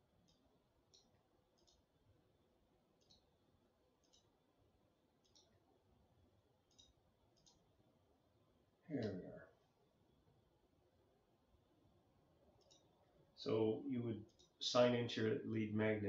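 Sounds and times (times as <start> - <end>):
faint computer mouse clicks: 0.3 - 1.8, 3.0 - 3.2, 4.0 - 4.3, 5.2 - 5.5, 6.7 - 7.6, 12.6 - 13.0.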